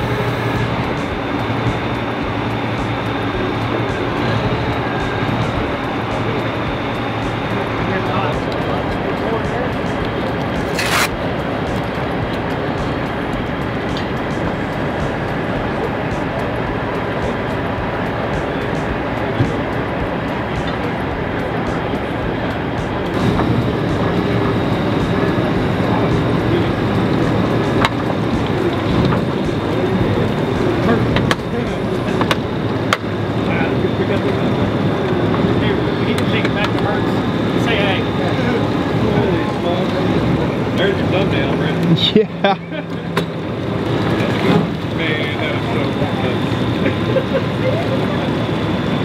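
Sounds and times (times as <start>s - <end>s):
truck engine running: 0.0s - 49.0s.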